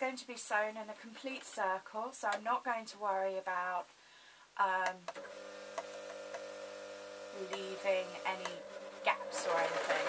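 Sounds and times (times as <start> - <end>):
sewing machine motor hum: 5.2 - 10.0.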